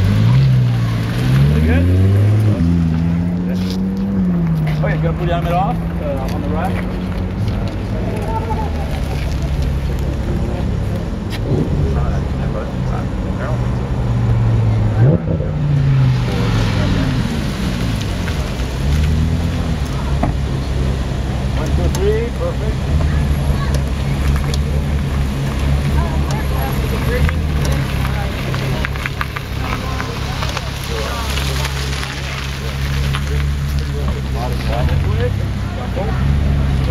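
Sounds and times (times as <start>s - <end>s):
car engine revving: 0.0s - 36.9s
car engines idling hum: 0.0s - 36.9s.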